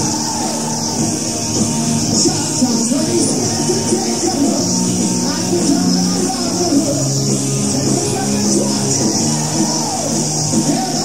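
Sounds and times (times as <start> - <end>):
drums: 0.0 - 11.0
electric guitar and bass: 0.0 - 11.0.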